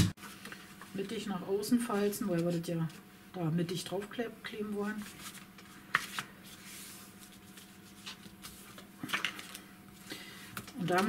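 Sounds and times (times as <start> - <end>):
paper rustling and rubbing: 5.0 - 9.6.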